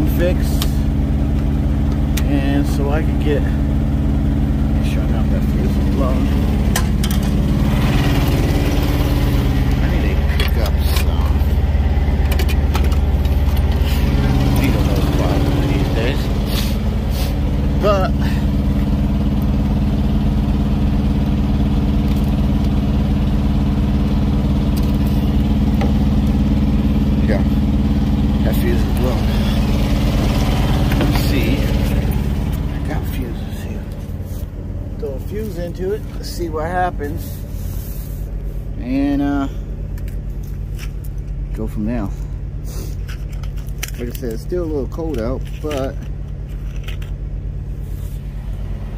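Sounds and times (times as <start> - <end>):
truck engine idling: 0.0 - 48.9.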